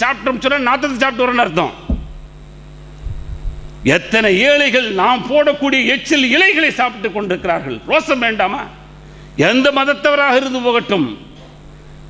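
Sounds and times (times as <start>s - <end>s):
electrical mains hum: 0.0s - 12.0s
faint low thumps: 1.9s - 2.4s, 3.0s - 3.9s.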